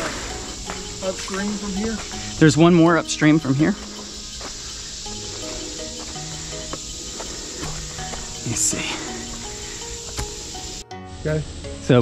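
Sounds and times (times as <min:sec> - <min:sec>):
insect chorus buzzing: 0:00.0 - 0:12.0
soft slow music: 0:00.0 - 0:12.0.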